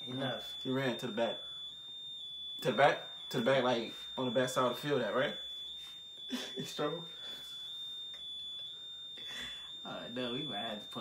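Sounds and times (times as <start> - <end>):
thin high-pitched whine: 0.0 - 11.0
stifled laughter: 6.3 - 6.6.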